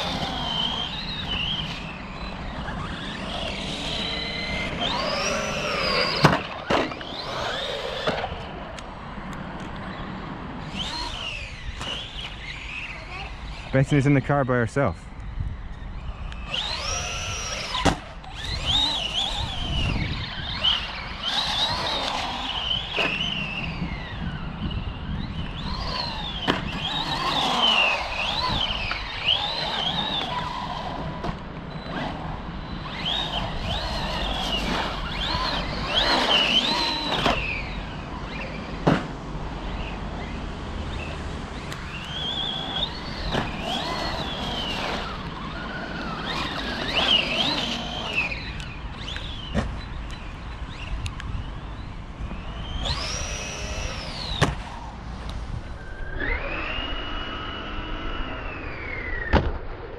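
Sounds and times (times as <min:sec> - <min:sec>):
electric motor whining: 0:00.0 - 0:14.2, 0:15.0 - 0:38.8, 0:39.5 - 0:59.2.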